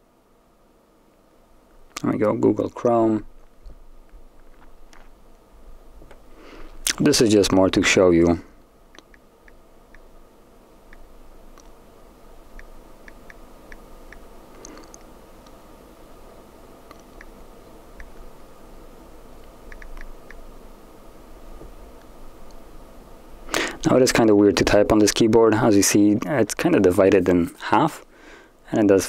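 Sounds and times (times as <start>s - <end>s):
low hum: 0.0s - 27.8s.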